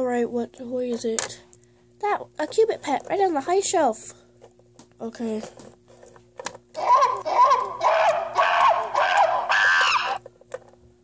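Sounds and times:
high-pitched wordless vocal sounds: 0:06.8 - 0:09.5.

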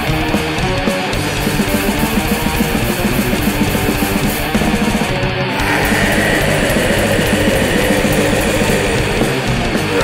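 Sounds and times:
distorted electric guitars: 0:00.0 - 0:10.0
fast drumming: 0:01.1 - 0:10.0.

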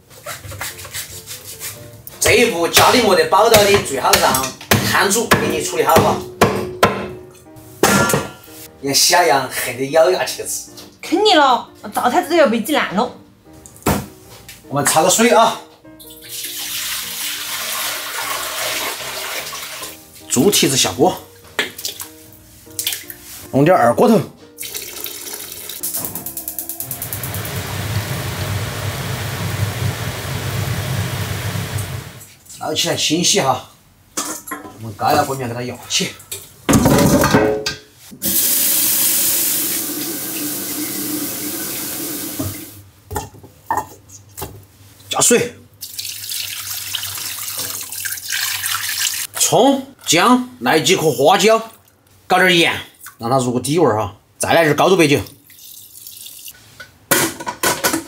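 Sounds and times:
water pouring into a wok: 0:16.1 - 0:20.0, 0:24.6 - 0:26.0, 0:26.8 - 0:32.2, 0:38.2 - 0:42.6, 0:45.8 - 0:49.3, 0:55.4 - 0:56.6.

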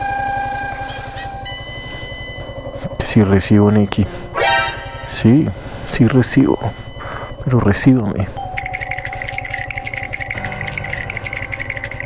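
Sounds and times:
electronic tones: 0:00.0 - 0:10.9
motorcycle engine idling: 0:00.2 - 0:07.5.

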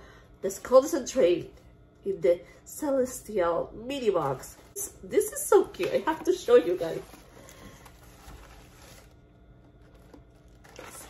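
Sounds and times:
tissue paper rustling: 0:04.1 - 0:11.0.

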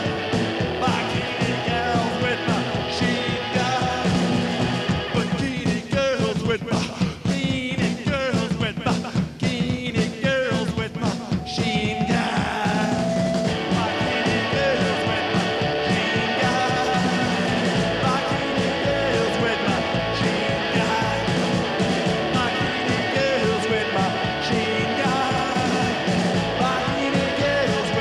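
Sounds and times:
distorted electric guitar: 0:00.0 - 0:06.3, 0:10.9 - 0:28.0
drums with driving beat: 0:00.0 - 0:28.0.

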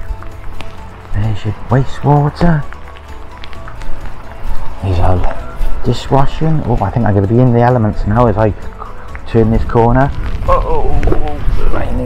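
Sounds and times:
footsteps on wet paving: 0:00.0 - 0:12.0
wind rumbling on microphone: 0:09.1 - 0:12.0.

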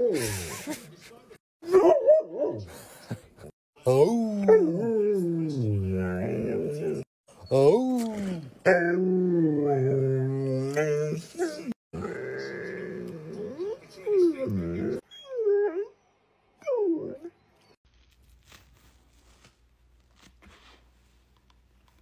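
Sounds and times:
dog whining: 0:06.8 - 0:16.0.

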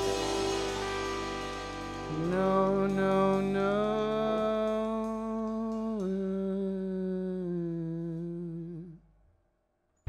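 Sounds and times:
man humming a held note: 0:01.9 - 0:09.0.

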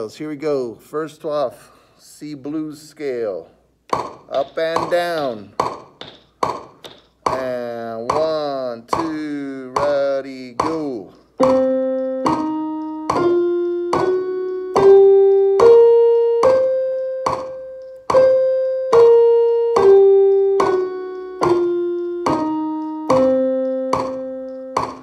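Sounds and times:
electronic keyboard playing blues scale: 0:07.4 - 0:25.0.

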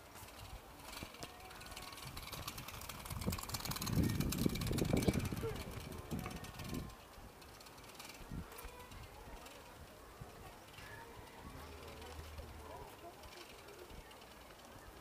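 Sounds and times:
light ticks of bicycle wheels: 0:00.0 - 0:15.0
murmur of voices: 0:00.0 - 0:15.0
small bicycle rolling past: 0:00.0 - 0:15.0.

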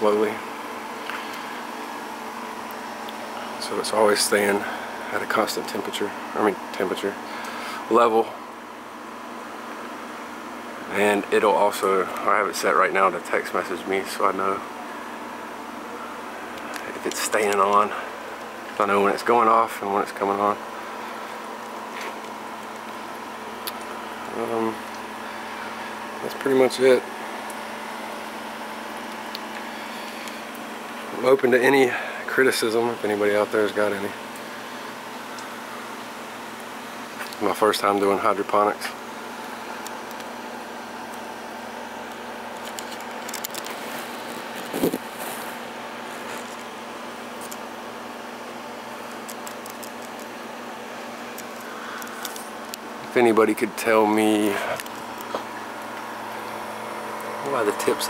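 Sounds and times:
pump running: 0:00.0 - 0:58.0
steady low hum: 0:00.0 - 0:58.0.

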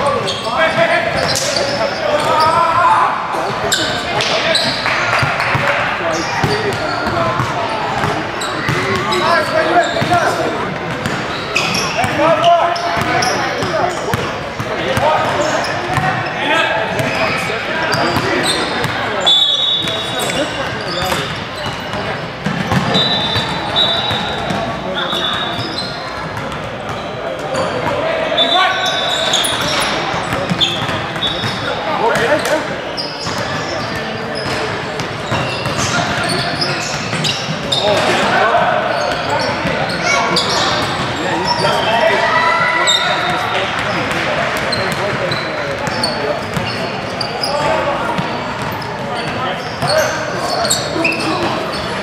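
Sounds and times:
chatter of many voices: 0:00.0 - 0:52.0
sneakers squeaking: 0:00.0 - 0:52.0.

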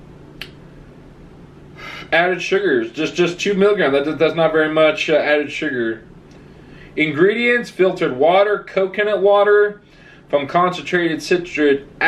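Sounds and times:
faint low hum: 0:00.0 - 0:12.0
man inhaling: 0:01.7 - 0:02.2, 0:06.3 - 0:07.0, 0:09.8 - 0:10.3
man speaking: 0:01.8 - 0:06.1, 0:07.0 - 0:12.0.

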